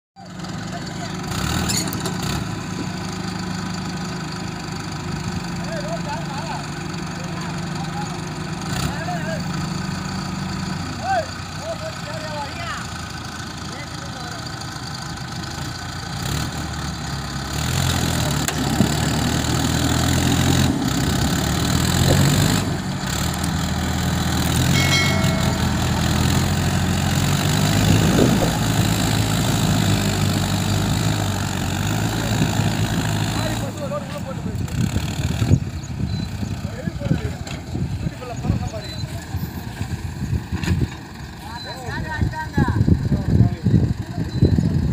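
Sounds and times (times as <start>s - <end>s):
diesel engines under load: 0.2s - 44.9s.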